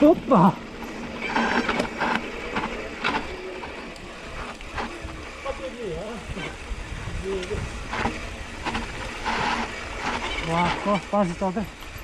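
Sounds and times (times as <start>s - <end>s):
bike chain and frame rattling: 0.0s - 12.0s.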